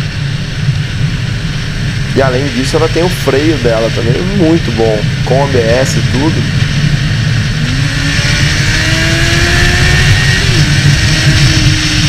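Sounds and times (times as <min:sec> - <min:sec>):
motorcycle engine running: 0:00.0 - 0:12.0
wind on microphone: 0:00.0 - 0:12.0.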